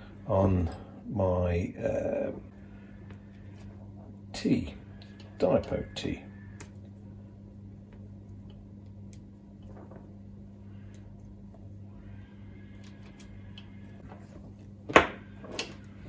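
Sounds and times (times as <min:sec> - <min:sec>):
steady low hum: 0:00.0 - 0:16.0
faint rustling of wires: 0:06.5 - 0:16.0.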